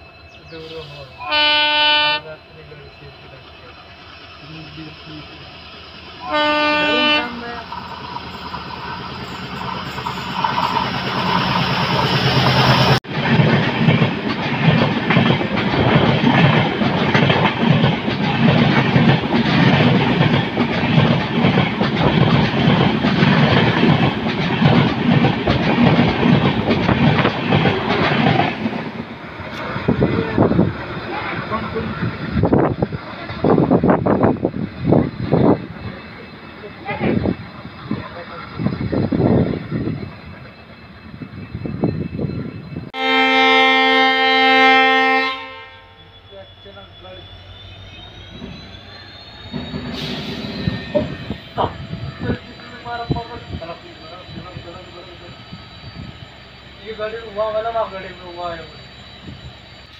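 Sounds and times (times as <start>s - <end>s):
passenger train passing: 0.0s - 59.9s
train horn blasts: 1.2s - 2.4s, 6.2s - 7.6s, 43.0s - 46.2s
wheel clatter over rail joints: 13.1s - 34.0s.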